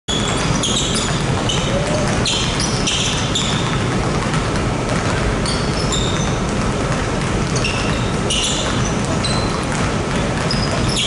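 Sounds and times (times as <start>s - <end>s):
basketballs bouncing on hardwood floor: 0.1s - 11.0s
shoes squeaking on court: 0.1s - 11.0s.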